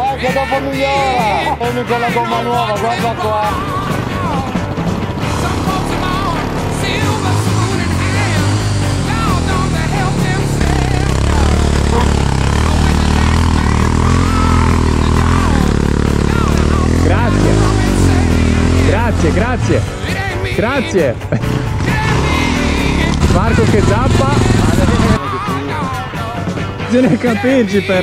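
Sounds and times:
background music: 0.0s - 28.0s
motorcycle engine revving: 1.1s - 27.2s.

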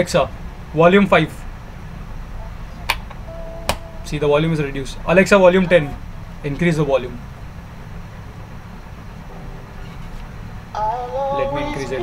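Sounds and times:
quiet music from speaker: 9.3s - 12.0s.

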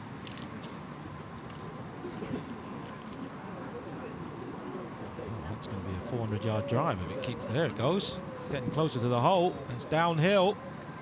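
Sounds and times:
outdoor background hiss: 0.0s - 11.0s
distant voices murmuring: 1.6s - 11.0s.

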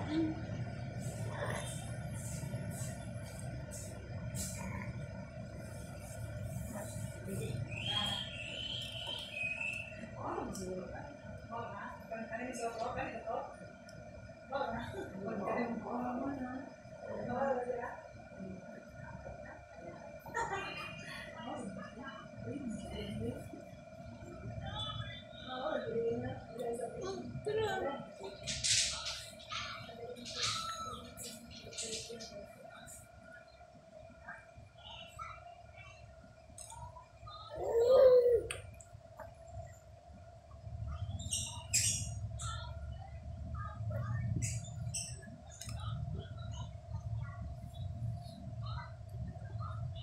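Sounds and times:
thin steady hum: 0.0s - 50.0s
baby vocal sound: 37.5s - 38.6s.

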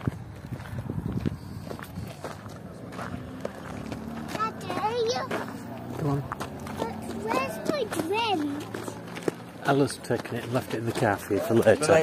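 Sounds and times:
footsteps walking: 0.0s - 11.8s
young people chattering: 4.0s - 12.0s.

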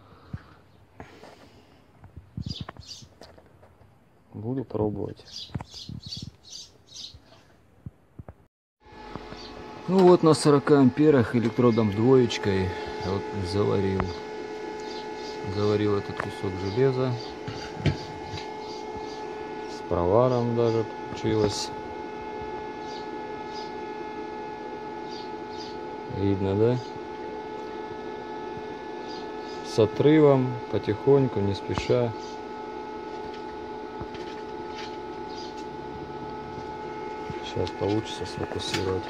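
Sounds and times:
electrical hum: 0.0s - 39.0s.

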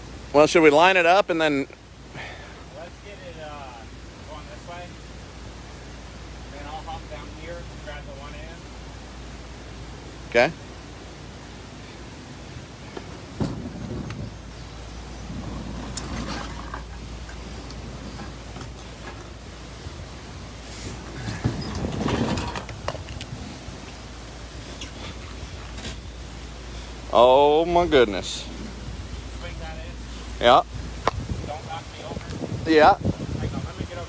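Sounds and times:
steady low rumble: 2.7s - 34.0s
canoe scraping over rocks: 12.8s - 32.2s
canoe knocking on rocks: 12.9s - 14.3s.

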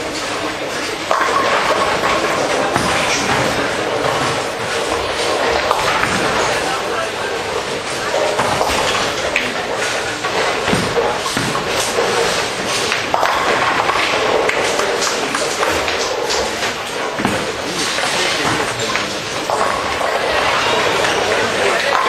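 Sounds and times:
bowling balls thudding: 0.0s - 22.0s
hubbub of voices: 0.0s - 22.0s
sharp knocks: 1.1s - 6.8s, 7.5s - 20.2s.

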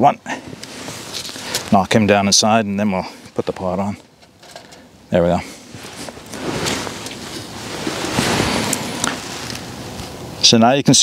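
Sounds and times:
metal pot handling rustle: 3.2s - 4.9s, 5.7s - 10.2s.

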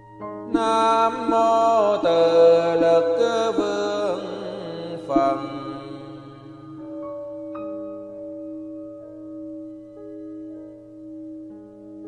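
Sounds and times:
person chanting long held notes: 0.5s - 7.0s.

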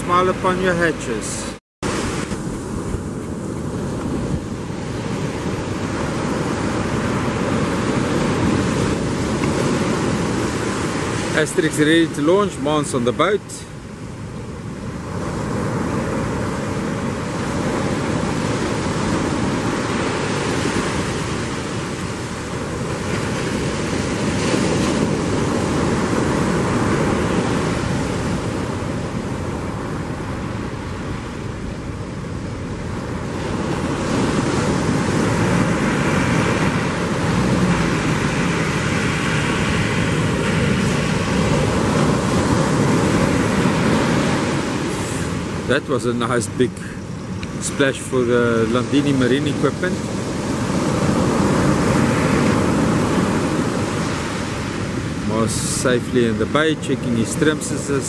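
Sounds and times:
ocean surf breaking: 0.0s - 58.0s
wind buffeting microphone: 1.8s - 13.0s, 13.7s - 58.0s.

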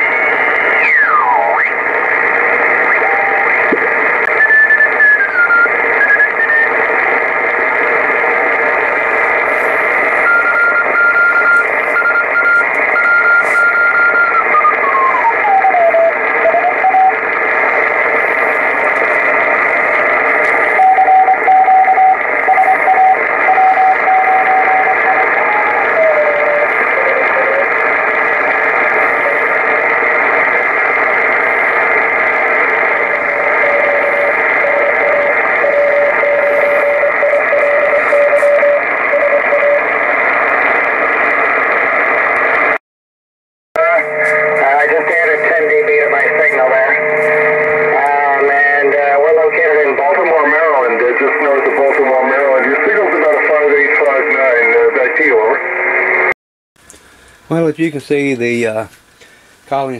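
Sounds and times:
radio static: 0.0s - 42.8s, 43.8s - 56.4s.

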